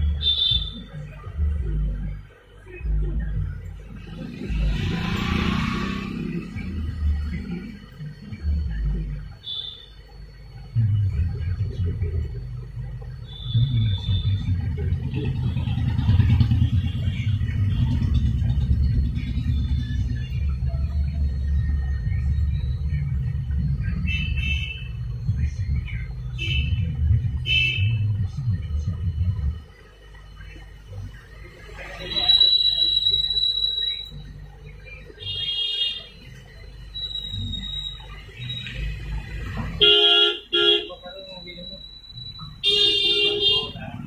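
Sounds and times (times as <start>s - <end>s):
street traffic rumble: 0.0s - 44.0s
vehicle horn toots: 39.8s - 41.0s, 42.6s - 43.8s.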